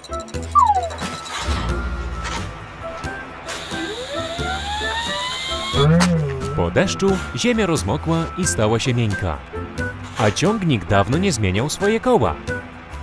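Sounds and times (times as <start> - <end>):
cartoon background music: 0.0 - 13.0
rising whine: 4.0 - 7.4
short falling tone: 5.8 - 7.1.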